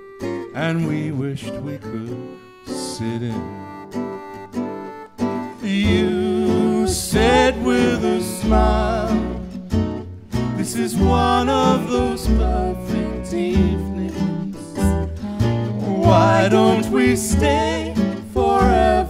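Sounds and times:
gypsy jazz band playing: 0:00.0 - 0:19.0
wavering melody line: 0:03.8 - 0:09.8.

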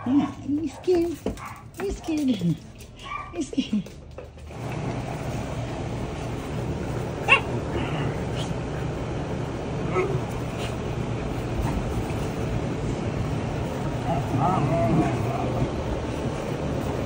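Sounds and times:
steady rushing noise: 0:04.5 - 0:17.0
puppy yipping: 0:07.2 - 0:07.5
puppies whining: 0:07.2 - 0:08.6.

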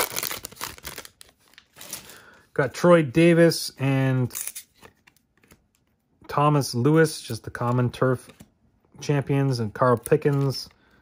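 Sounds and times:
plastic wrapper tearing and crinkling: 0:00.0 - 0:02.1.

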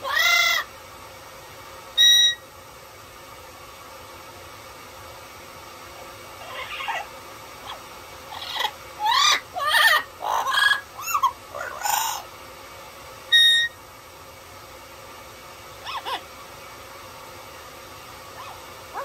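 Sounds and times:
parrot squawky calls: 0:00.0 - 0:00.7, 0:02.0 - 0:02.4, 0:06.4 - 0:12.3, 0:13.3 - 0:13.8, 0:15.8 - 0:16.3, 0:18.3 - 0:19.0
parrot whistle: 0:00.0 - 0:00.7, 0:02.0 - 0:02.5, 0:06.4 - 0:12.2, 0:13.3 - 0:13.8, 0:15.8 - 0:16.2.

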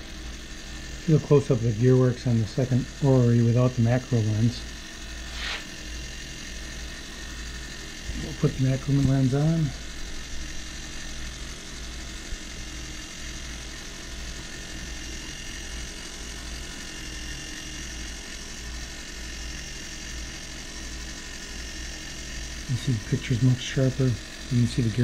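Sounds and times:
gear works whirring: 0:00.0 - 0:25.0.

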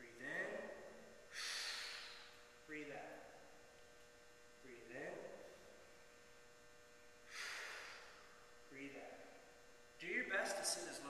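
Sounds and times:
faint steady hum: 0:00.0 - 0:11.0
person breathing: 0:01.3 - 0:02.4, 0:07.2 - 0:08.4.

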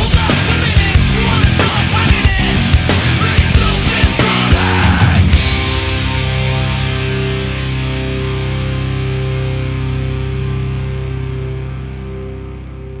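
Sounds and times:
distorted electric guitar chord: 0:00.0 - 0:13.0.

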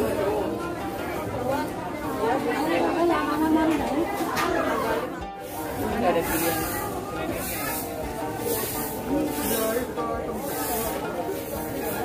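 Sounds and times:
background voices: 0:00.0 - 0:12.0
music from stalls: 0:00.0 - 0:12.0.

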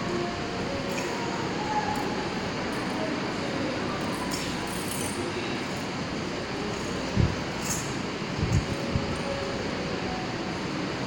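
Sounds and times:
steady rushing noise: 0:05.2 - 0:11.0.

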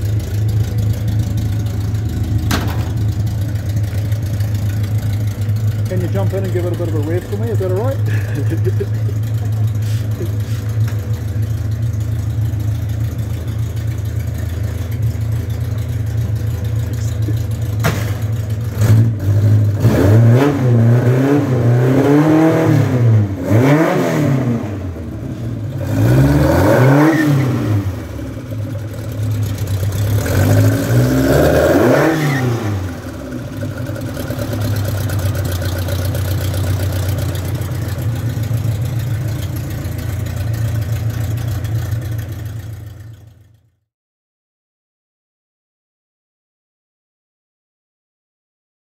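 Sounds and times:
race car engine idling and revving: 0:00.0 - 0:43.8.

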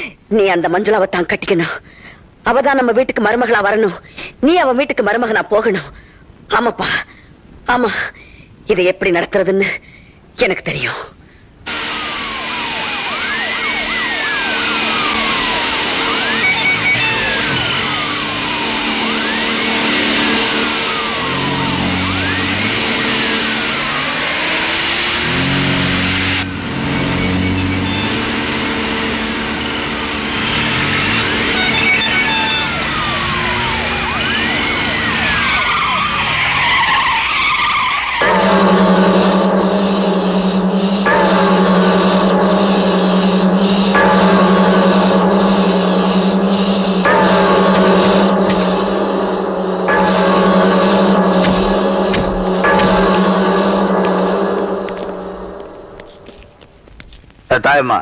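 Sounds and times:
low drone with pulsing chords: 0:11.7 - 0:36.6, 0:38.2 - 0:56.6
low sustained tones: 0:11.7 - 0:36.6, 0:38.2 - 0:56.6
falling siren-like sweeps: 0:11.7 - 0:56.7.

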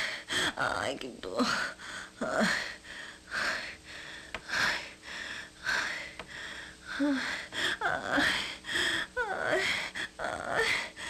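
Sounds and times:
person breathing heavily: 0:01.4 - 0:11.0.

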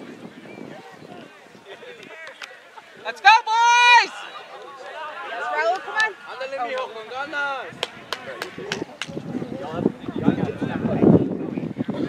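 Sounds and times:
voices chattering and calling out: 0:00.0 - 0:12.0.

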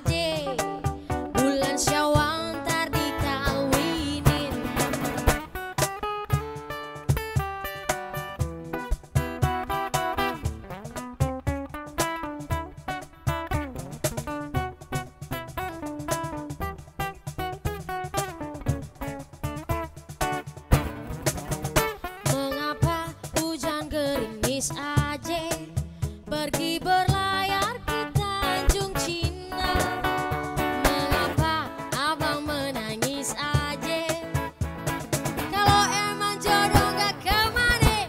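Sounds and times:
woman singing: 0:00.0 - 0:05.2, 0:22.2 - 0:34.6, 0:35.4 - 0:38.0
acoustic guitar picking: 0:00.0 - 0:38.0
hand drum strokes: 0:00.0 - 0:38.0.

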